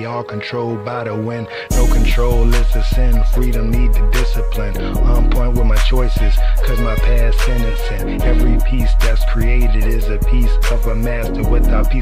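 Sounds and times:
rapped vocal: 0.0 - 12.0
heavy bass line: 1.7 - 12.0
hi-hat beat: 1.7 - 12.0.

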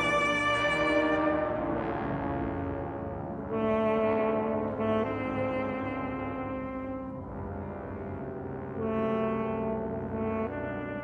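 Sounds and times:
wind ensemble playing held chords: 0.0 - 11.0.

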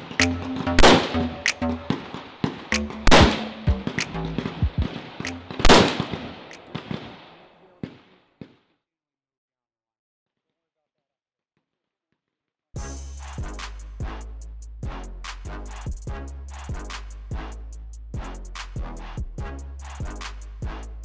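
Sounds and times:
background music with bass line: 0.0 - 2.1, 2.7 - 5.8, 12.8 - 21.0
rifle shots: 0.8 - 1.1, 1.9 - 7.3.

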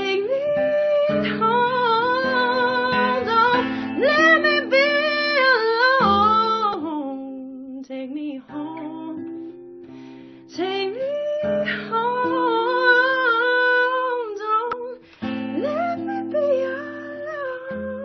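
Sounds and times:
acoustic guitar: 0.0 - 18.0
woman singing: 0.0 - 18.0.

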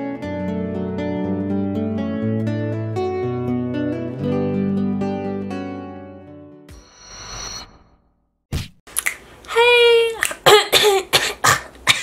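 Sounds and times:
woman coughing: 10.2 - 12.0
woman clearing throat: 10.4 - 12.0.

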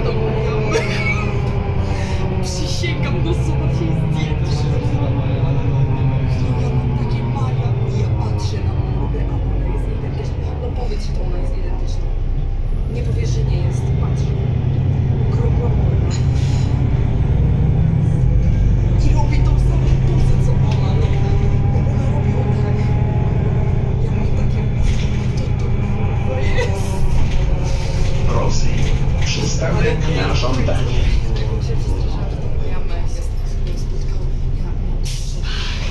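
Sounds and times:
bus diesel engine drone: 0.0 - 35.9.

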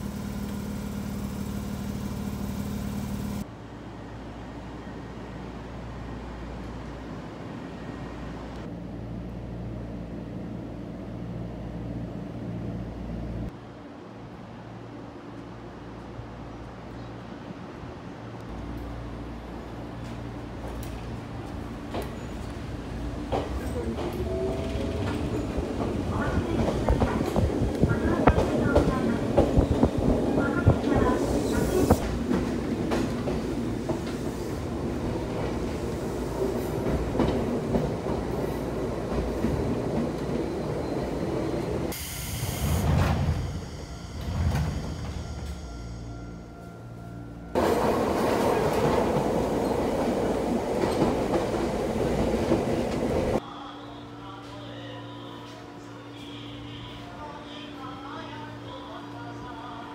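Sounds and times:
train rumble from inside: 0.0 - 59.9.

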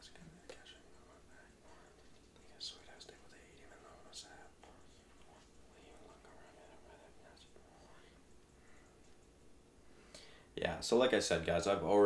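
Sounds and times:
man whispering: 0.0 - 8.8.

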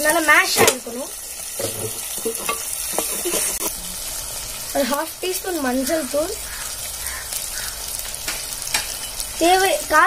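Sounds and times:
vegetables sizzling in hot oil: 0.0 - 10.0.

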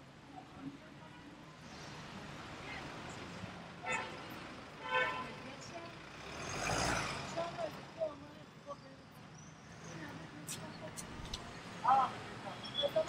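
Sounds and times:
city traffic: 0.0 - 13.0
vehicle passing close by: 6.0 - 7.6.

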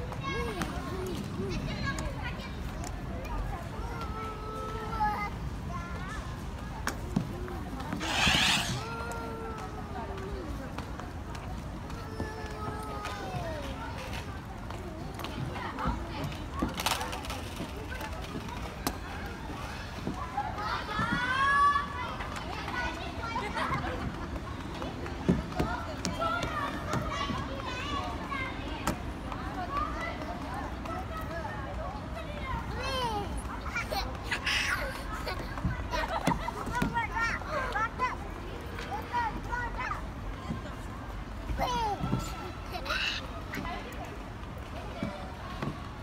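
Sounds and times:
young children chattering: 0.0 - 46.0
child sliding down plastic slide: 8.0 - 9.1.

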